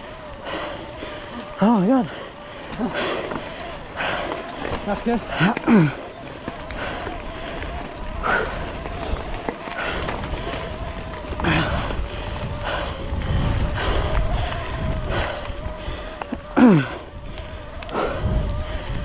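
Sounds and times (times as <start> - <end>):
bike tyres crunching on gravel: 0.0 - 19.0
wind rumble on microphone: 6.3 - 19.0.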